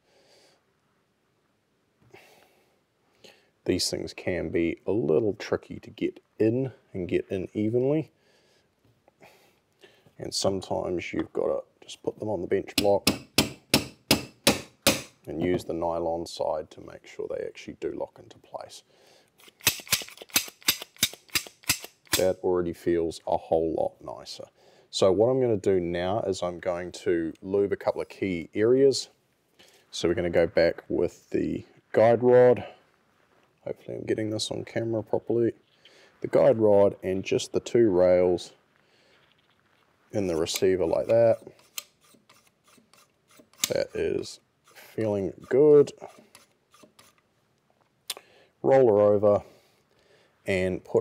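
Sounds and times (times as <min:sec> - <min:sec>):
rifle bolt clacking: 0:19.6 - 0:22.2.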